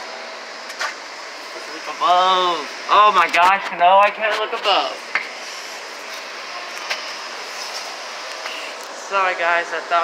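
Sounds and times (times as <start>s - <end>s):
busy indoor room hiss: 0.0s - 10.0s.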